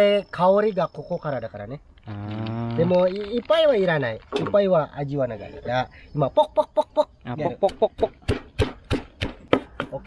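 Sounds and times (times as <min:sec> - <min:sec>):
pestle pounding in clay mortar: 0:07.6 - 0:10.0.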